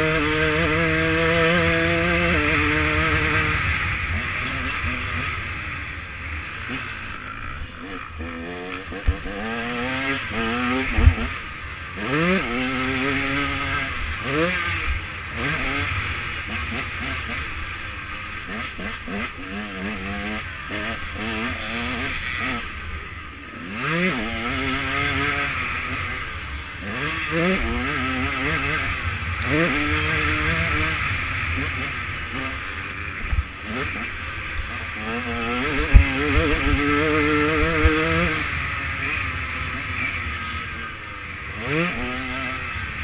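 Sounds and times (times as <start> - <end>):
motocross engine revving: 0.0 - 43.0.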